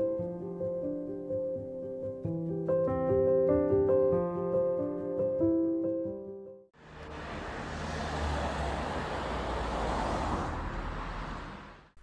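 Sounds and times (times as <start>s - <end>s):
vehicle driving past: 6.8s - 12.0s.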